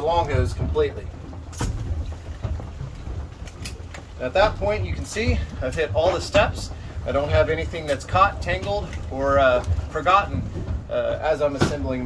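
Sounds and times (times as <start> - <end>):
boat engine low rumble: 0.0 - 12.0.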